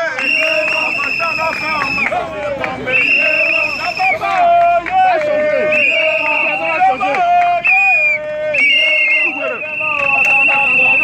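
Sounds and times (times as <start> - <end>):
voices of marching crowd: 0.0 - 11.0
plastic whistle blast: 0.2 - 2.1, 5.7 - 7.0, 7.6 - 11.0.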